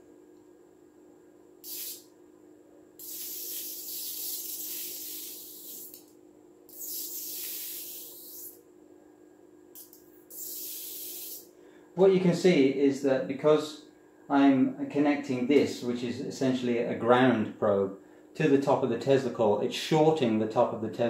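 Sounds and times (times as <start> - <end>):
tesla coil sparks hissing: 1.6 - 2.1, 3.0 - 6.1, 6.7 - 8.6, 9.8 - 11.5.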